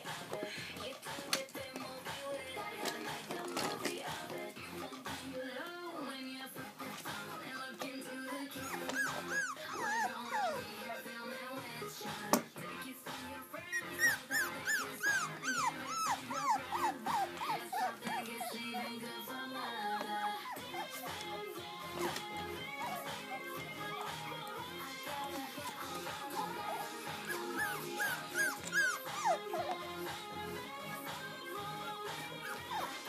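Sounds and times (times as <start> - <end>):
music: 0.0 - 33.0
puppy high-pitched cries: 8.6 - 10.7, 13.7 - 18.6, 25.7 - 29.8, 32.4 - 33.0.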